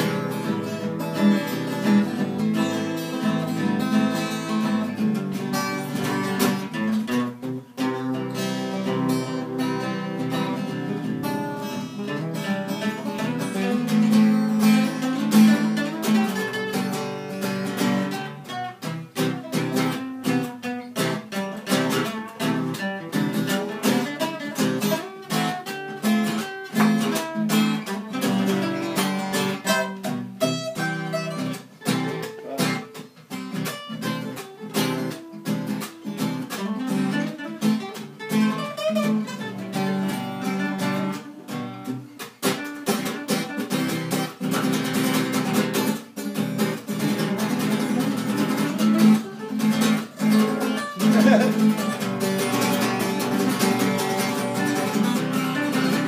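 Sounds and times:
acoustic guitars playing chords: 0.0s - 56.0s.

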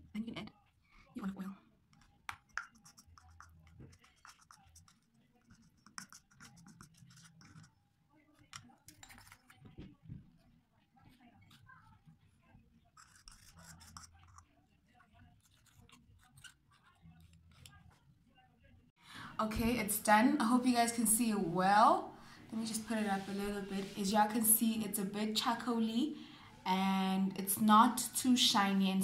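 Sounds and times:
spatula scraping plastic bowl: 22.6s - 24.8s.

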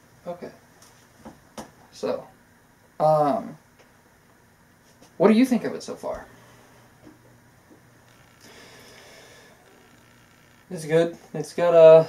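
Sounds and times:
soft breath-like hiss: 8.4s - 9.6s.

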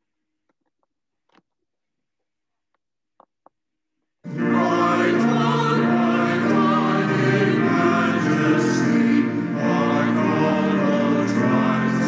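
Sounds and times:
choir singing a hymn: 4.3s - 12.0s.

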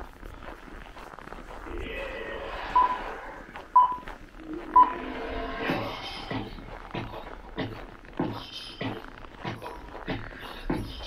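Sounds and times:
short electronic beeps: 2.8s - 3.0s, 3.8s - 4.0s.

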